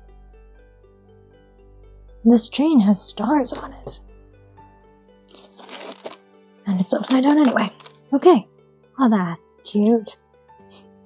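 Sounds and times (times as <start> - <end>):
faint background music: 0.0 - 11.0
paper card rustling: 5.3 - 6.2, 6.8 - 8.0.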